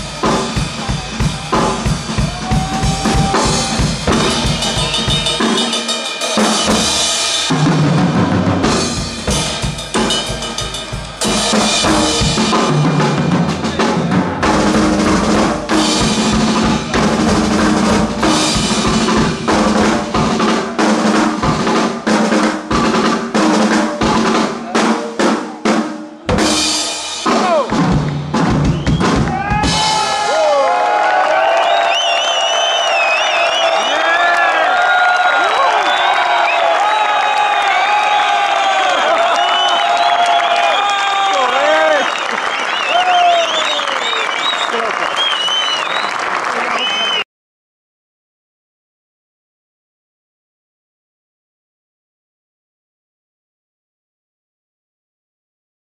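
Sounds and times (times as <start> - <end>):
drum kits playing: 0.0 - 31.4
audience cheering and applauding: 1.9 - 5.5, 27.3 - 47.3.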